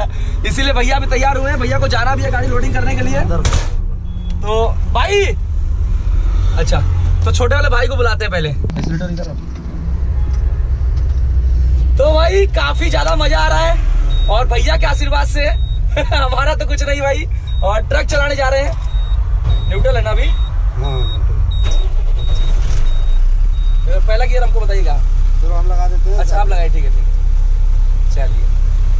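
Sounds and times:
diesel engine idling: 0.0 - 28.9.

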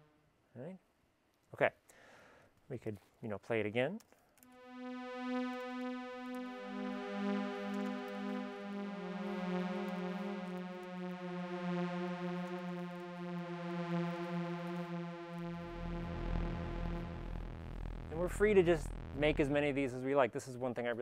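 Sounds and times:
sawtooth synth notes: 4.4 - 20.0.

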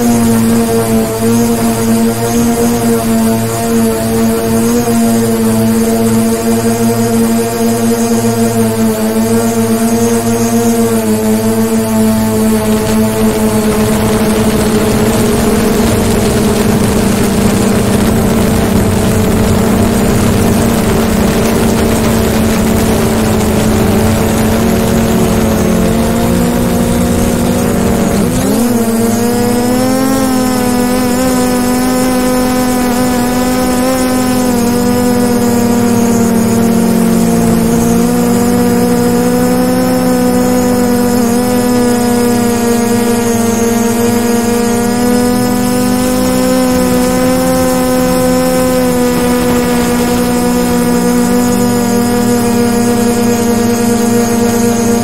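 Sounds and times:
drone propellers whining: 0.0 - 55.0
rushing noise: 12.2 - 33.4.

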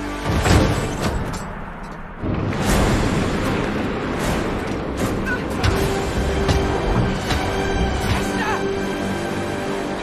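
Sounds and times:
film music score: 0.0 - 10.0.

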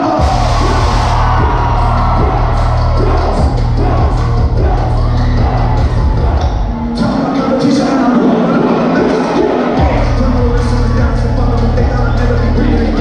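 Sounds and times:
crowd yelling: 0.0 - 13.0
heavy bass: 0.0 - 13.0
loud live concert music: 0.0 - 13.0
person singing: 7.0 - 13.0.

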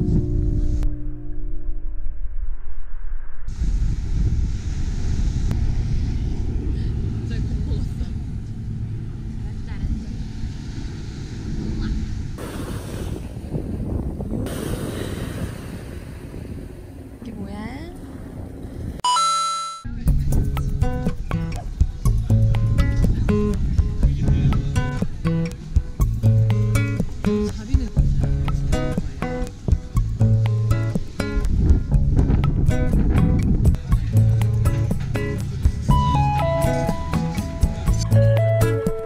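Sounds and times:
wind buffeting microphone: 0.0 - 1.0, 1.6 - 19.0, 20.0 - 36.0
background guitar music: 0.0 - 1.8, 19.9 - 39.0
surf breaking: 10.1 - 19.0.

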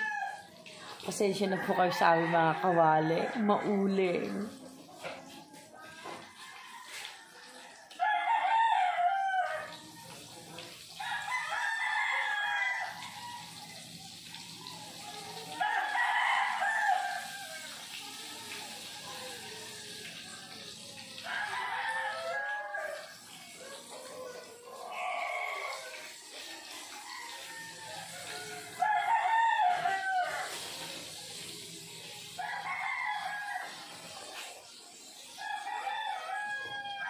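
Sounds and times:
rooster crowing: 1.4 - 4.2, 6.3 - 9.8, 11.0 - 13.8, 15.5 - 17.8, 21.2 - 23.2, 24.0 - 30.8, 32.4 - 33.9, 35.4 - 37.0
food sizzling in oil: 9.8 - 36.4.

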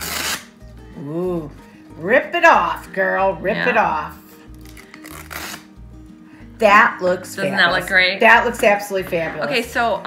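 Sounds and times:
masking tape tearing: 0.0 - 0.6, 4.5 - 5.8
quiet background music: 0.0 - 10.0.

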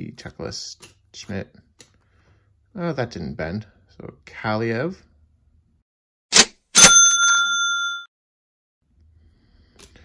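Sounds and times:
bright bell ding: 6.8 - 8.1.

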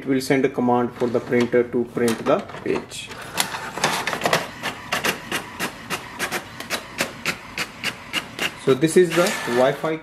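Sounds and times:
inkjet printer printing: 3.2 - 10.0
sharp printer clicks: 3.9 - 9.8.

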